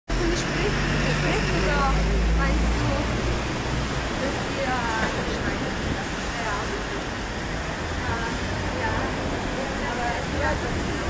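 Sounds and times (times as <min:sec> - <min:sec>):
voices talking in background: 0:00.1 - 0:11.0.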